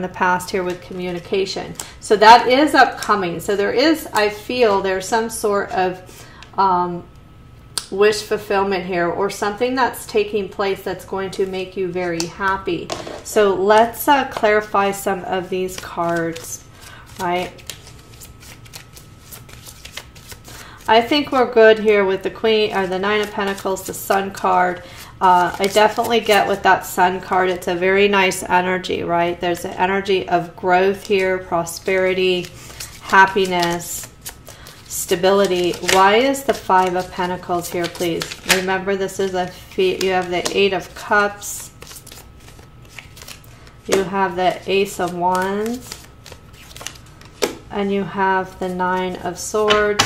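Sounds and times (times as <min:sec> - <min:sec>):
cards being shuffled: 0:15.6 - 0:21.1, 0:22.6 - 0:24.5, 0:25.3 - 0:26.4, 0:30.9 - 0:47.7.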